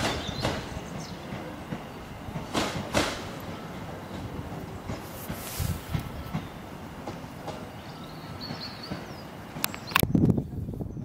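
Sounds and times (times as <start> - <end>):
wheels clicking over rail joints: 0.0 - 10.3
train rumbling on track: 0.0 - 11.0
hissing noise: 4.9 - 6.2.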